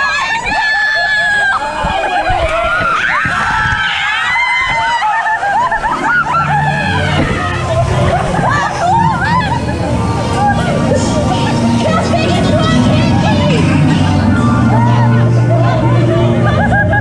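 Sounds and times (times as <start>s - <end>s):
ride music: 0.0s - 17.0s
riders screaming and laughing: 0.0s - 17.0s
steady low hum: 5.4s - 17.0s.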